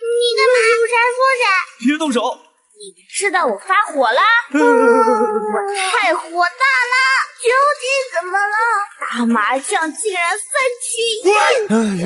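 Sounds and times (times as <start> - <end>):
short lower voice: 4.6 - 5.9, 11.7 - 12.0.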